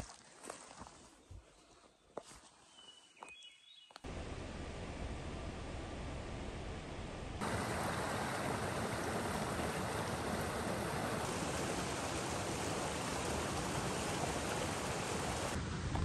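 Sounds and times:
creek flowing over rocks: 7.4 - 15.6.

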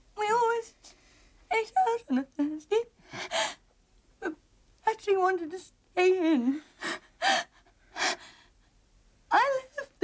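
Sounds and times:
woman gasping and sobbing: 3.0 - 3.7, 6.6 - 8.6.

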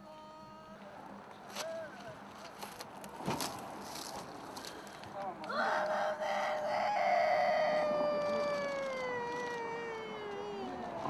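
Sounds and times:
woman wailing: 7.9 - 10.9.

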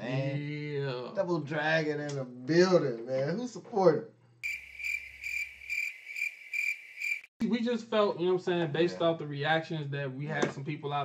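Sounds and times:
crickets chirping: 4.4 - 7.3.

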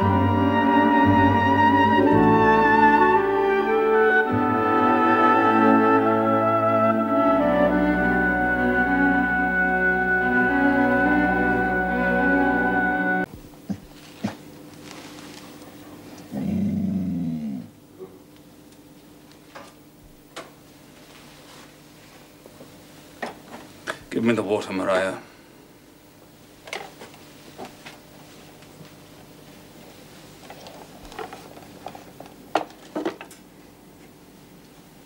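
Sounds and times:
dog growling: 13.7 - 14.4, 16.2 - 18.2.

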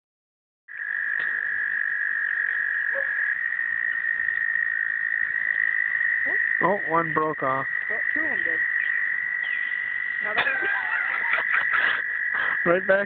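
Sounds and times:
chorus of frogs calling: 0.7 - 13.0.

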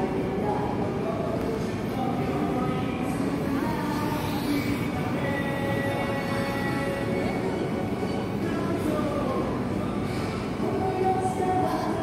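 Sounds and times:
indoor crowd hubbub: 0.0 - 12.0.

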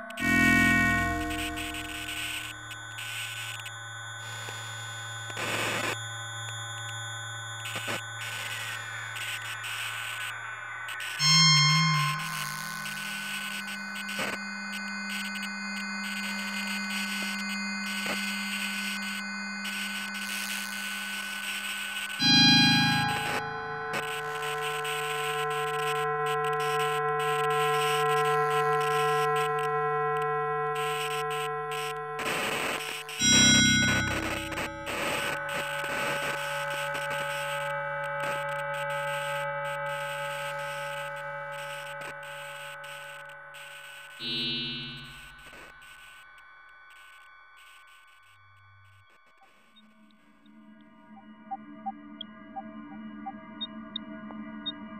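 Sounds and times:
held synthetic tones: 0.1 - 2.5, 11.2 - 13.2, 22.2 - 24.0, 33.2 - 35.5.

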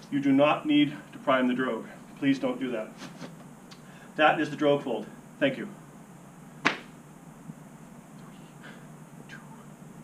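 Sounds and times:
short sharp slap: 6.6 - 7.0.

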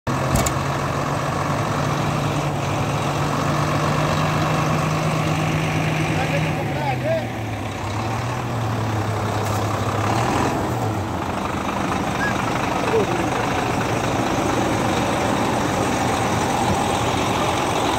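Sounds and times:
diesel engine idling: 0.1 - 17.9.

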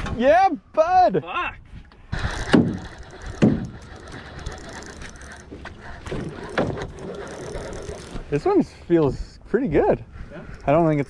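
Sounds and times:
fishing reel whirring and clicking: 2.1 - 8.4, 10.4 - 11.0.

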